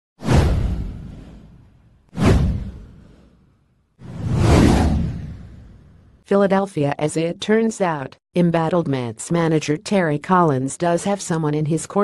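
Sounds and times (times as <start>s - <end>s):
whoosh sound effects: 4.0s - 6.1s.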